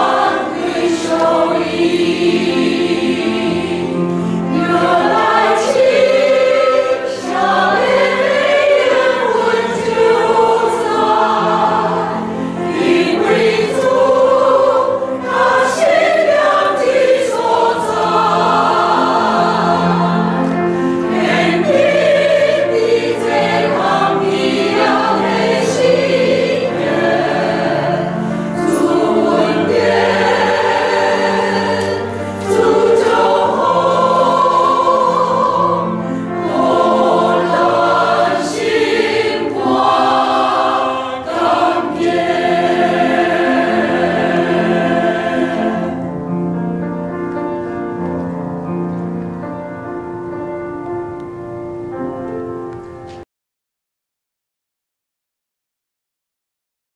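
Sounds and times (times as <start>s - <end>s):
choir singing a hymn: 0.0s - 49.0s.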